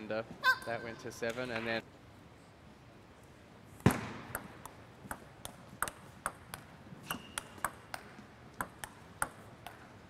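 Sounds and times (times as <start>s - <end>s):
table tennis ball clicking: 4.3s - 9.9s.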